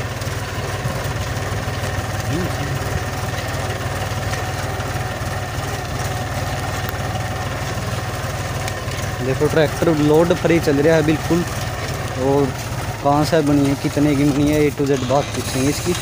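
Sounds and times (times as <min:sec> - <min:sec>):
tractor diesel engine running: 0:00.0 - 0:16.0.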